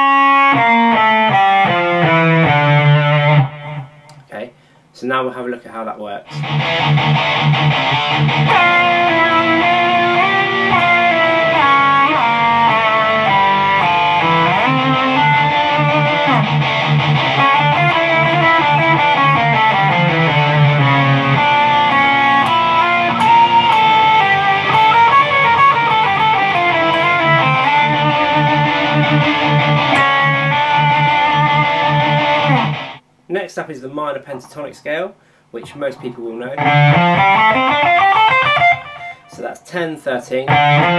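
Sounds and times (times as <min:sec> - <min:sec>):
heavy metal rhythm riff: 0:00.0 - 0:03.8, 0:06.3 - 0:33.0, 0:35.6 - 0:39.6, 0:40.3 - 0:40.9
electric guitar lead line: 0:00.0 - 0:04.2, 0:06.3 - 0:33.0, 0:35.6 - 0:39.6, 0:40.4 - 0:40.9.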